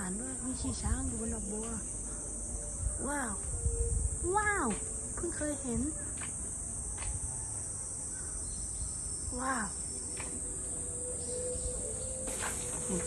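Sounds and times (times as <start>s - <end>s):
high-pitched insect drone: 0.0s - 13.0s.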